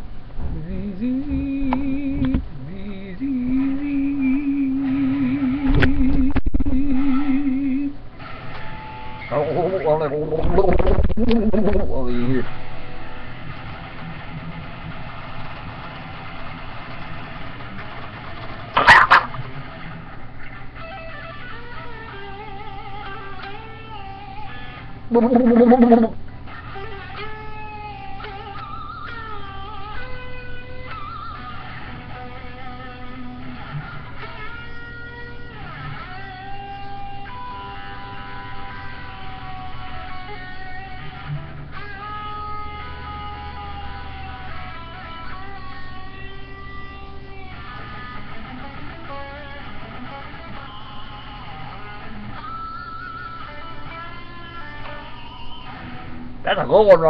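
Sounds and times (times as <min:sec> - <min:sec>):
steady low hum: 0:00.0 - 0:15.8, 0:16.5 - 0:30.9
electric guitar lead lines: 0:00.0 - 0:57.0.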